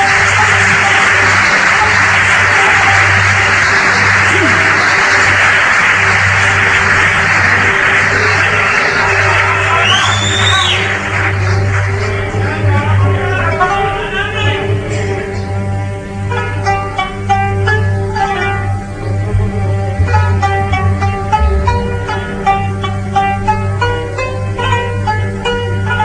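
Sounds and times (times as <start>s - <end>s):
low bass note: 17.2s - 25.0s
synth sweep: 19.0s - 23.2s.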